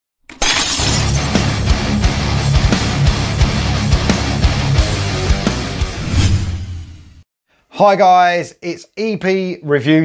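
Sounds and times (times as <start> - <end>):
glass shattering: 0.3 - 1.6
rock music with drum beat: 1.1 - 6.0.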